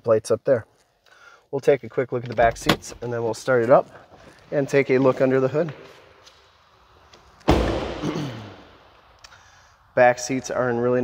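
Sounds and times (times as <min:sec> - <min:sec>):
car door shutting with thud: 0:07.5 - 0:08.1.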